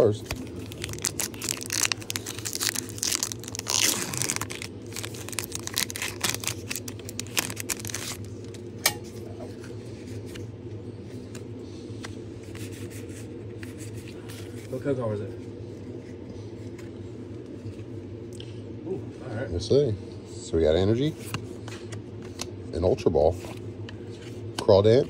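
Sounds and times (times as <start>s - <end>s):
foil wrapper tearing and crinkling: 0.0s - 8.6s.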